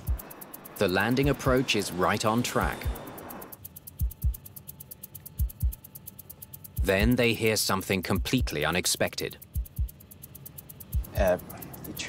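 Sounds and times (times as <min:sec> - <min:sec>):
low double thumps: 0:00.0 - 0:00.3, 0:02.7 - 0:04.5, 0:05.3 - 0:05.8, 0:06.6 - 0:07.2, 0:09.4 - 0:10.0, 0:10.8 - 0:11.3
fast high ticking: 0:00.0 - 0:12.0.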